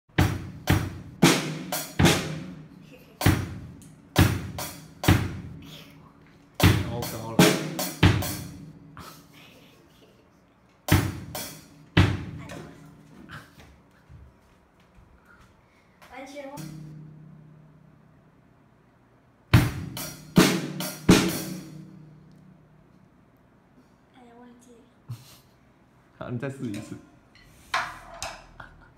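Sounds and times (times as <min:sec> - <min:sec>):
drum and cymbal strikes: 0:00.1 - 0:05.6, 0:06.6 - 0:09.2, 0:10.9 - 0:12.6, 0:16.6 - 0:17.4, 0:19.5 - 0:22.2.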